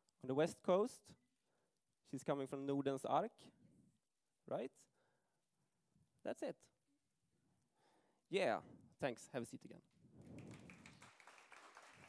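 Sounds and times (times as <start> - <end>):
audience clapping lightly: 10.2 - 12.0.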